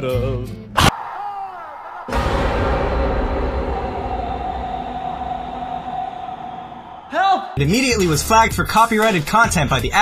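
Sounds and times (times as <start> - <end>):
mechanical rumble: 2.1 - 7.1.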